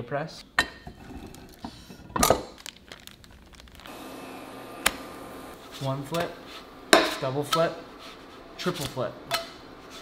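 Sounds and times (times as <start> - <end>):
parchment paper crinkling: 2.5 - 3.9.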